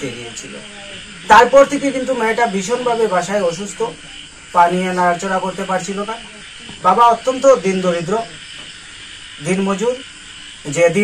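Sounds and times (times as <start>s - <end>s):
man speaking: 0.0s - 8.4s, 9.4s - 11.0s
background hiss: 0.0s - 11.0s.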